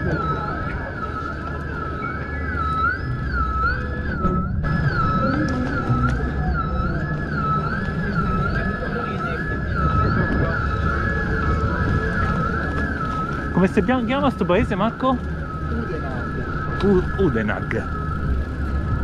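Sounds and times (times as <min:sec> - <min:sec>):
emergency vehicle siren wailing: 0:00.0 - 0:19.0
wind and road noise: 0:00.0 - 0:19.0.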